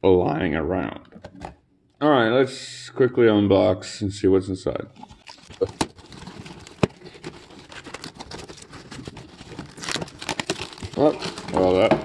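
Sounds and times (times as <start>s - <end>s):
cardboard and foam rustling: 5.0s - 12.0s.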